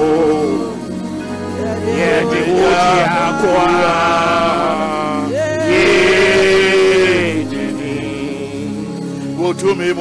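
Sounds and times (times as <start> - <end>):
sustained instrumental accompaniment: 0.0 - 10.0
man singing into a microphone: 1.6 - 8.8.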